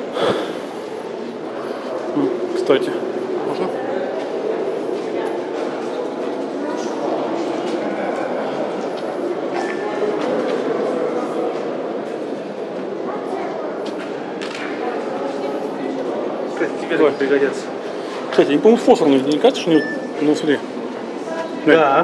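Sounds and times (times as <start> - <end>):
murmur of people chattering: 0.0 - 22.0.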